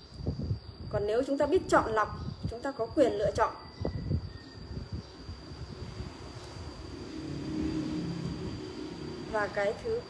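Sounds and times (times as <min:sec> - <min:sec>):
faint hum: 0:00.0 - 0:10.0
low background rumble: 0:04.0 - 0:10.0.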